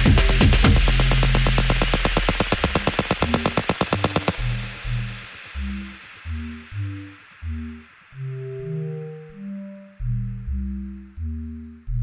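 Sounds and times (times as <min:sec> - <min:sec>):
noisy percussive electronic hits: 0:00.0 - 0:08.6
low synth notes: 0:00.0 - 0:11.5
low bass drone: 0:00.0 - 0:12.0.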